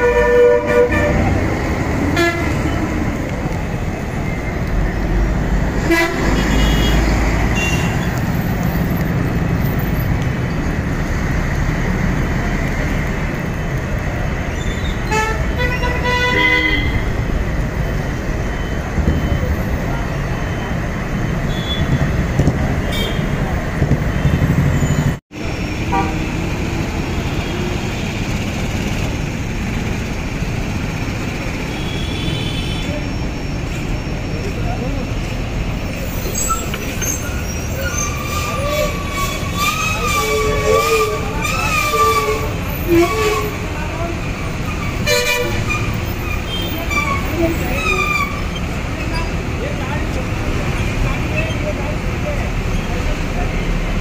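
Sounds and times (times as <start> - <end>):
street traffic rumble: 0.0 - 54.0
vehicle horn tooting: 5.9 - 8.1, 15.1 - 17.1, 21.5 - 22.0, 38.6 - 43.6, 45.0 - 45.8
people's voices: 32.6 - 54.0.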